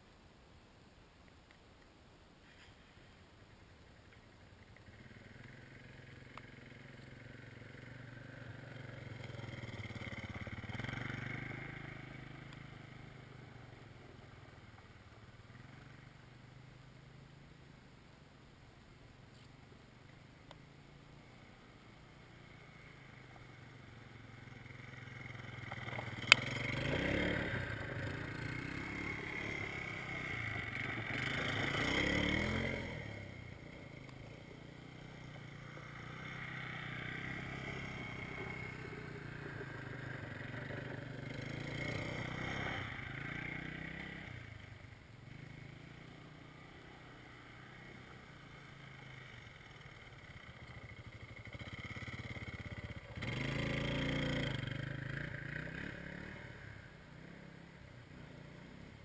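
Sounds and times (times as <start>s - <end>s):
atv engine running: 4.6s - 18.2s, 20.1s - 59.0s.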